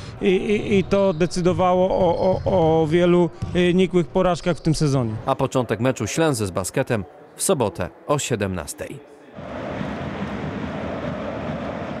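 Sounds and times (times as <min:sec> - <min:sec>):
steady rushing noise: 0:09.4 - 0:12.0.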